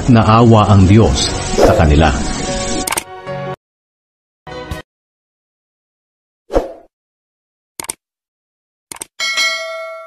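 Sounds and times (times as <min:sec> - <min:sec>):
double mouse click: 0:08.9 - 0:09.1
notification bell chime: 0:09.2 - 0:10.0.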